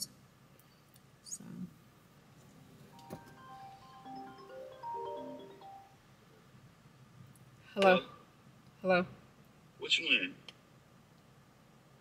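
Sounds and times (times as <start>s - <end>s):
mobile phone ringtone: 3.0s - 6.0s.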